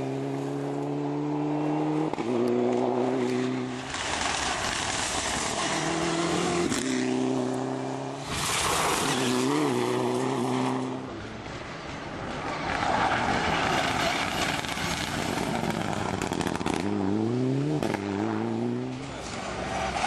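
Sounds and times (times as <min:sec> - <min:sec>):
rally car engine at high revs: 0:00.0 - 0:11.2, 0:12.6 - 0:20.0
tyres sliding on gravel: 0:03.7 - 0:07.2, 0:08.2 - 0:10.6, 0:12.5 - 0:16.5.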